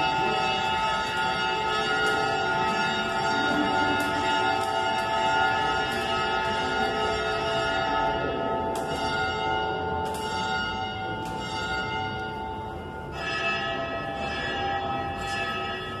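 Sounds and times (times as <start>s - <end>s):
church bells ringing: 0.0s - 16.0s.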